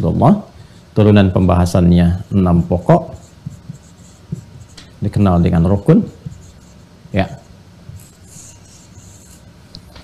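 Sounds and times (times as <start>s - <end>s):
marker scratching on whiteboard: 2.2s - 10.0s.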